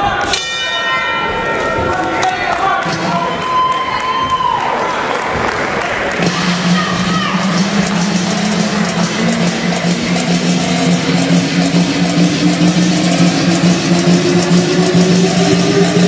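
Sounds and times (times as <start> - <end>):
low droning tone: 6.2 - 16.0
tone rising in pitch: 6.2 - 16.0.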